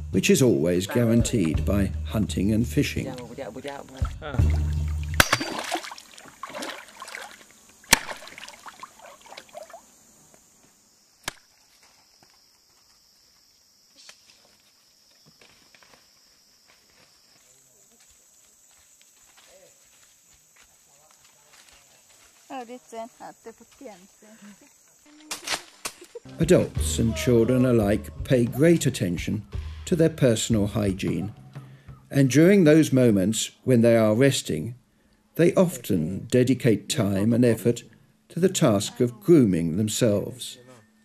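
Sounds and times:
men talking: 0:00.0 - 0:03.4, 0:26.3 - 0:31.4, 0:32.1 - 0:34.8, 0:35.4 - 0:40.8
person speaking: 0:00.2 - 0:04.6, 0:26.2 - 0:31.4, 0:35.4 - 0:40.4
fish thrashing in water: 0:04.5 - 0:09.8.

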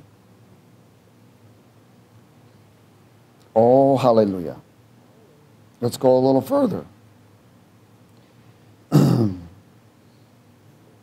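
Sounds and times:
man clearing his throat: 0:08.9 - 0:09.6.

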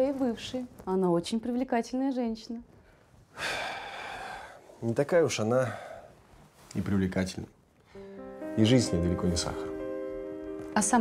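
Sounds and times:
breathy exhale: 0:03.3 - 0:04.8.

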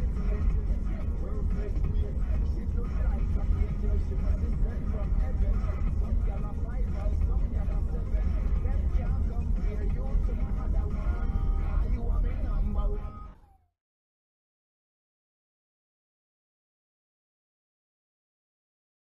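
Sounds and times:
car interior driving rumble: 0:00.0 - 0:13.3.

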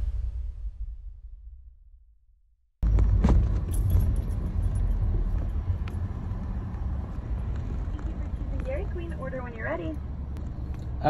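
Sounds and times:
car engine and road noise: 0:02.8 - 0:11.0.

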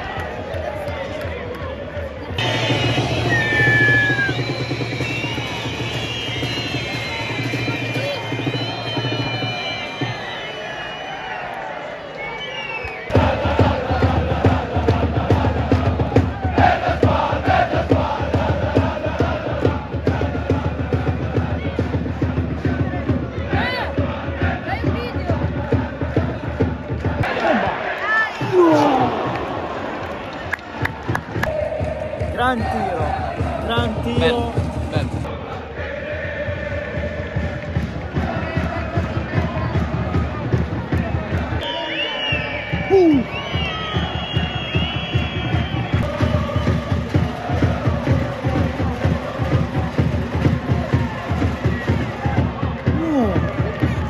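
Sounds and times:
football crowd chanting: 0:00.0 - 0:54.0.

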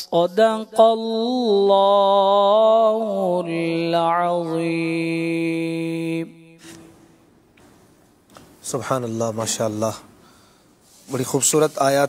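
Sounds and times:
quick breath: 0:10.2 - 0:11.0.

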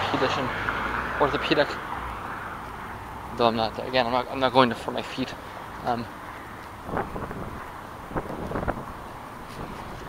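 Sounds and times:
traffic: 0:00.0 - 0:10.0
wind buffeting microphone: 0:06.2 - 0:10.0.

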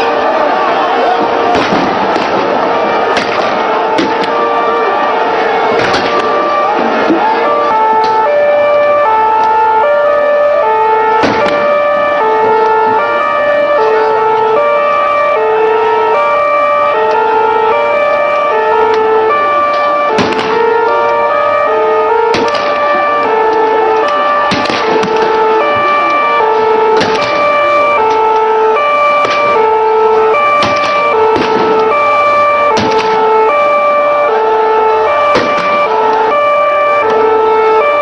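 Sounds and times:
sharp bangs: 0:00.0 - 0:38.0
two-tone siren: 0:00.0 - 0:38.0.

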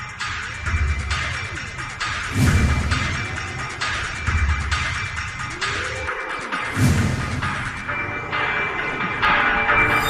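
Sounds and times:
dramatic theme music: 0:00.0 - 0:10.0.

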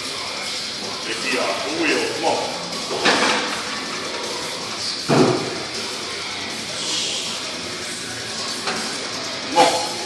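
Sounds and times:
gym background noise: 0:00.4 - 0:10.0.

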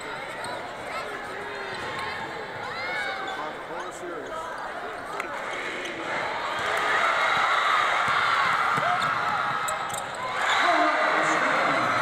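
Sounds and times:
crowd voices in arena: 0:00.0 - 0:12.0
basketball bouncing on court: 0:07.3 - 0:10.2.

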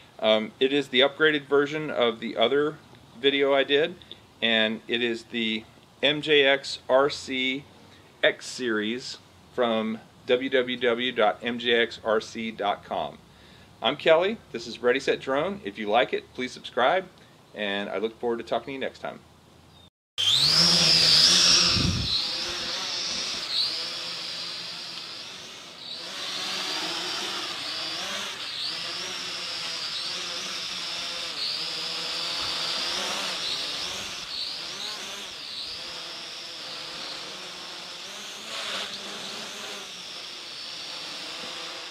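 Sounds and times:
drone propellers buzzing: 0:20.2 - 0:41.9.

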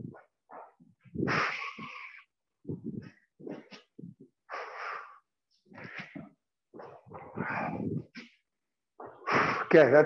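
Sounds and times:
person breathing hard: 0:07.2 - 0:08.2.

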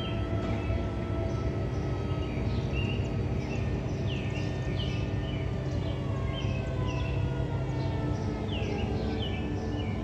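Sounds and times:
low outdoor rumble: 0:00.0 - 0:10.0
small birds chirping: 0:00.0 - 0:10.0.

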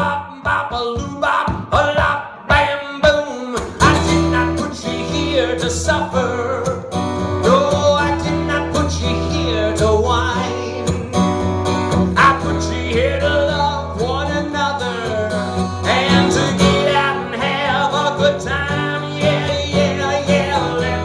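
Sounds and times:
acoustic guitar strumming: 0:00.0 - 0:21.0
man singing: 0:00.0 - 0:21.0.

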